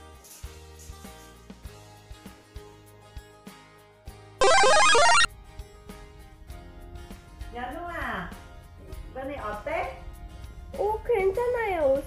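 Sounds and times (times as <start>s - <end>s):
bright stepping notes sting: 4.4s - 5.3s
quiet background music: 7.4s - 12.0s.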